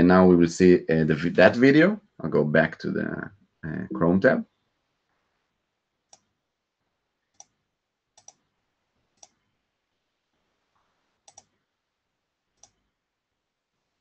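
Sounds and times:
computer mouse clicks: 6.1s - 6.4s, 7.3s - 7.6s, 8.2s - 8.5s, 9.1s - 9.5s, 11.2s - 11.6s, 12.6s - 12.9s.

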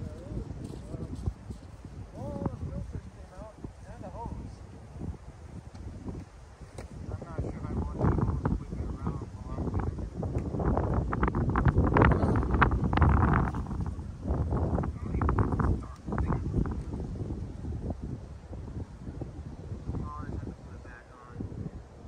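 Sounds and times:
wind rumble on microphone: 0.0s - 22.0s.

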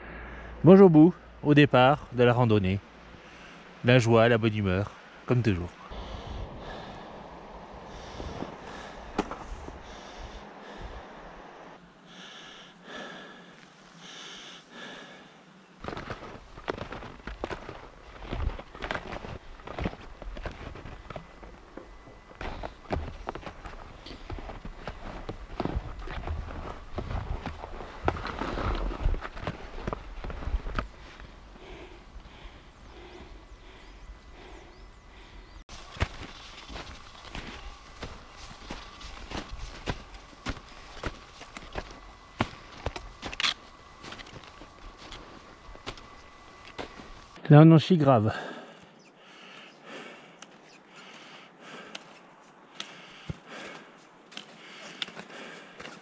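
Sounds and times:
skis crunching through snow: 15.8s - 21.3s, 22.4s - 31.3s, 35.7s - 47.4s
sharp clicks of ski gear: 51.8s - 56.0s.

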